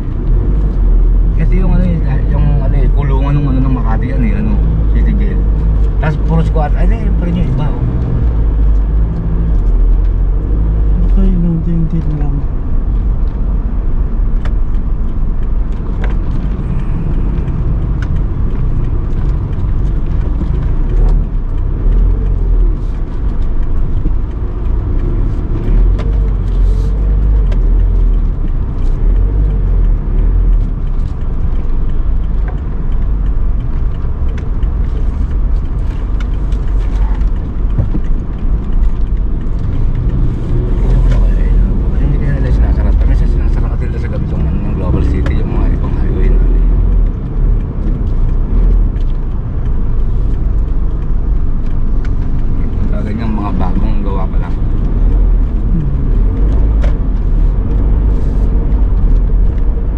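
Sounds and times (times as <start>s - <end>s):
car engine and tyre noise: 0.0s - 59.9s.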